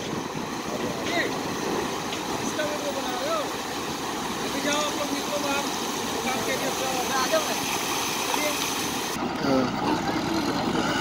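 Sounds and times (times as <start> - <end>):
crane engine running: 0.0 - 11.0
people's voices: 4.3 - 11.0.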